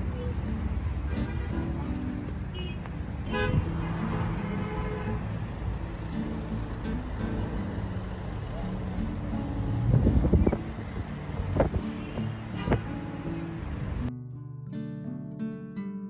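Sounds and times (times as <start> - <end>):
people's voices: 0.0 - 4.6
car traffic passing: 0.0 - 14.1.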